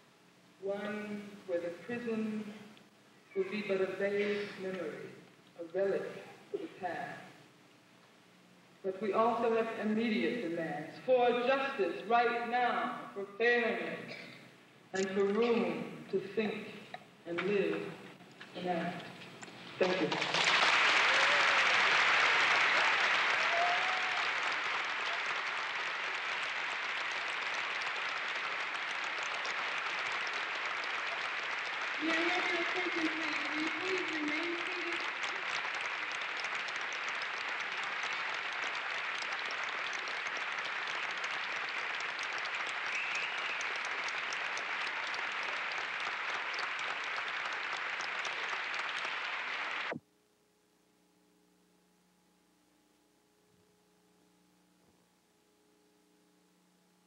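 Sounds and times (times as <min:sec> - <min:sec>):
audience applauding: 0:19.9 - 0:50.0.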